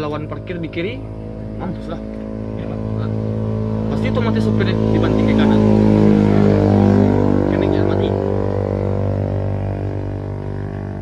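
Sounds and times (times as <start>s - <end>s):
engine drone: 0.0s - 11.0s.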